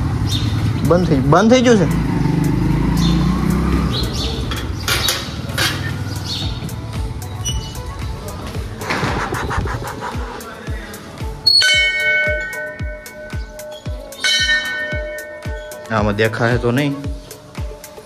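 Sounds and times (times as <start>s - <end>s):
background music with steady beat: 0.0s - 18.0s.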